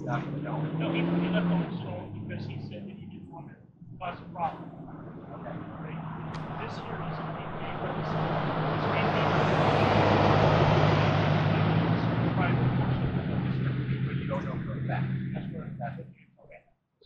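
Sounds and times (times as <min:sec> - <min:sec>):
passing vehicle engine hum: 0:00.0 - 0:16.1.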